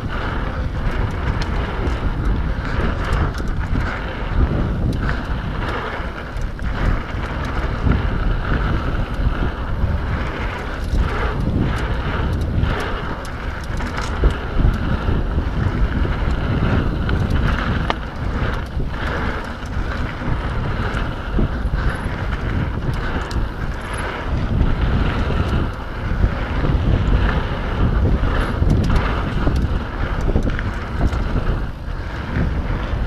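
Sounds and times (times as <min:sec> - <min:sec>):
bike clicks and rattles: 0:00.0 - 0:33.0
tyres rolling over dirt trail: 0:00.0 - 0:33.0
wind rushing over microphone: 0:00.0 - 0:33.0.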